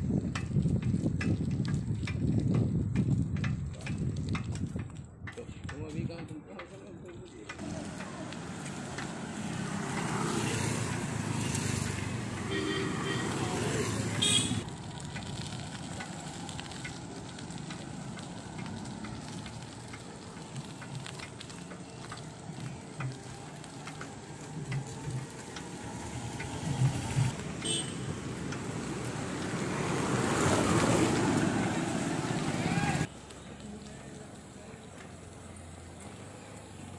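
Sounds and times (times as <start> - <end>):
wind rushing on microphone: 0.0 - 6.2
road traffic noise: 0.0 - 36.9.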